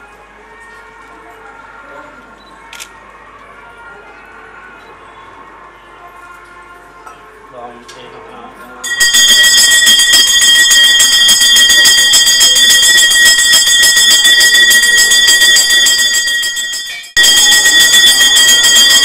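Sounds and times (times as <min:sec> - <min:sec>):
temple bell rung rapidly: 0:08.8 - 0:19.0.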